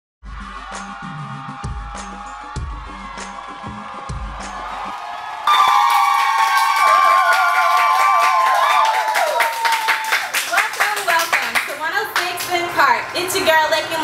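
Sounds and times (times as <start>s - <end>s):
women cheering with held shouts: 0.4s - 10.3s
people clapping: 3.0s - 12.7s.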